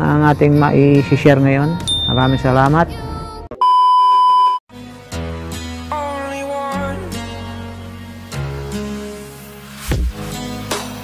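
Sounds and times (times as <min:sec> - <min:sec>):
chime: 0:01.9 - 0:02.4
steady electronic beep: 0:03.6 - 0:04.6.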